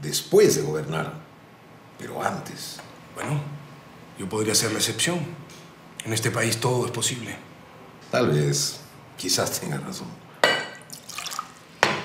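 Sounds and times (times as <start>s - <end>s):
glass clinking: 10.4s - 12.0s
liquid poured into a glass: 10.8s - 11.7s.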